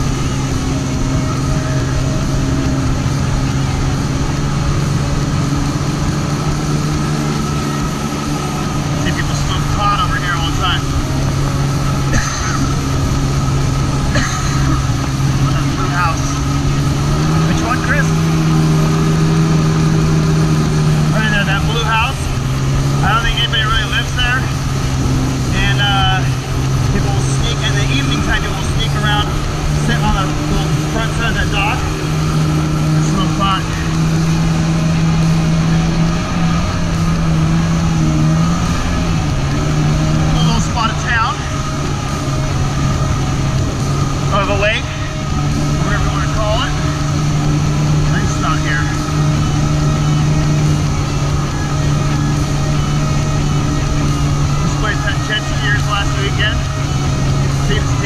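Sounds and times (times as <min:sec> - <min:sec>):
jet ski engine running: 0:00.0 - 0:58.0.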